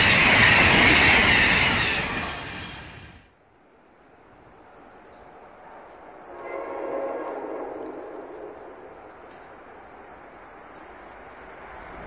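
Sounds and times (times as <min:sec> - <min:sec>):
train horn blast: 0:06.2 - 0:09.2.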